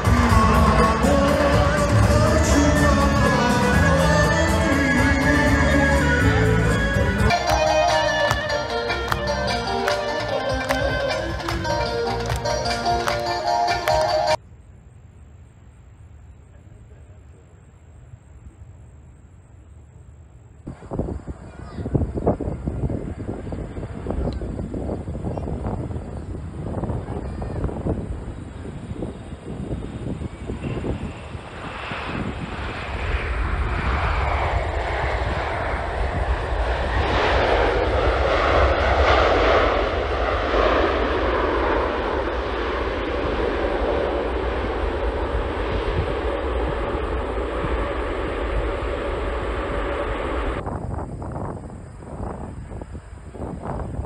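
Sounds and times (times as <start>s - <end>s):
jet engines roaring: 0.0s - 14.4s, 20.7s - 54.0s.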